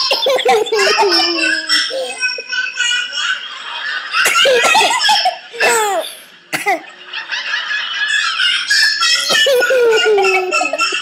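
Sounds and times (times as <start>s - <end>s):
toddler giggling and laughing: 0.0s - 3.5s, 7.6s - 11.0s.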